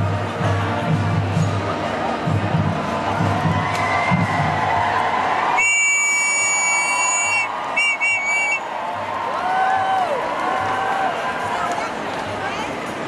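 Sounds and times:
large crowd shouting: 2.1 - 12.4
whistle blasts: 5.6 - 8.7.

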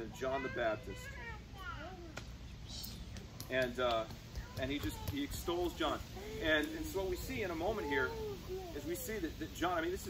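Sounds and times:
young child crying out: 6.0 - 9.4.

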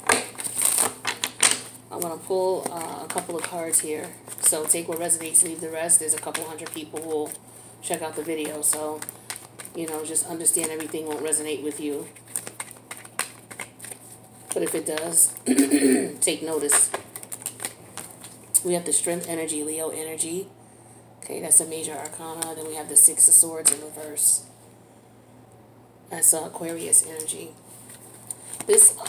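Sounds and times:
cards clattering while shuffled: 0.0 - 15.2, 16.7 - 18.4
cards snapping: 0.0 - 15.2, 16.7 - 18.4.

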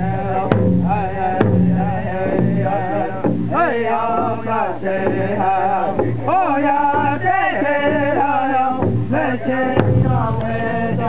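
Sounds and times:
large drum struck with sticks: 0.0 - 7.3, 7.9 - 11.0
men singing a chant: 0.0 - 11.0.

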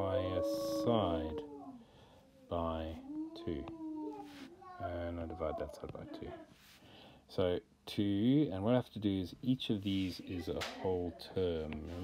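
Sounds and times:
person speaking a drawn-out word: 0.0 - 1.6.

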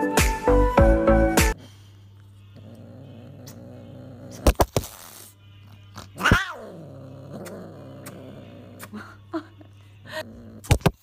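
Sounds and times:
cat meowing: 6.2 - 6.8.

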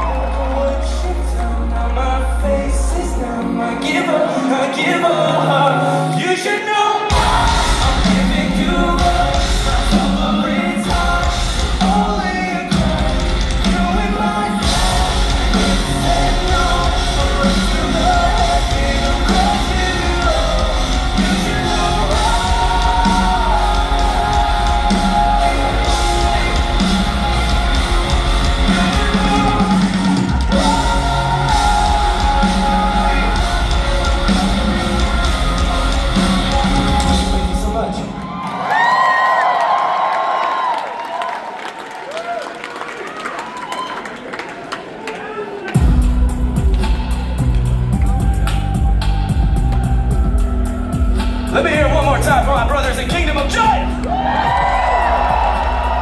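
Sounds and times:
live rock band: 0.0 - 38.6, 45.7 - 56.0.

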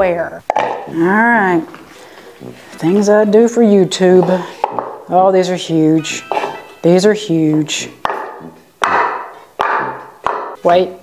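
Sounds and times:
wooden clogs on tiled floor: 0.5 - 5.4.

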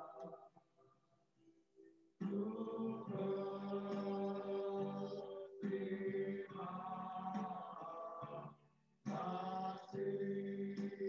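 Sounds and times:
electronic keyboard: 0.0 - 0.5, 1.8 - 11.0
men singing held notes: 2.2 - 8.4, 9.1 - 11.0.

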